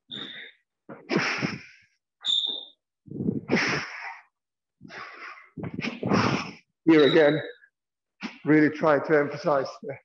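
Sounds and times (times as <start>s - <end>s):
shoes squeaking on hardwood floor: 0.0s - 0.5s, 2.2s - 2.8s
hard breathing: 3.1s - 6.8s.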